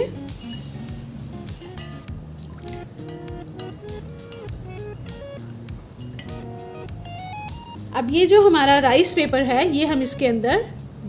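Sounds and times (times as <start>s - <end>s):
background music: 0.0s - 11.0s
spoon clinking against glass bowl: 0.3s - 0.8s, 1.8s - 4.8s, 6.0s - 6.6s.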